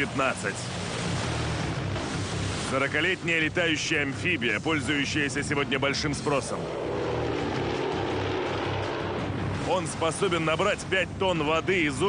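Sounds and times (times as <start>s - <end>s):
propeller plane engine drone: 0.0s - 11.9s.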